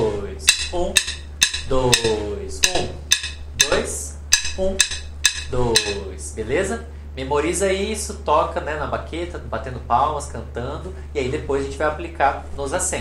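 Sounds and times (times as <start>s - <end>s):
man vocalizing rhythm: 0.0s - 6.1s
faint low hum: 0.0s - 13.0s
drumsticks clicking together: 0.4s - 6.0s.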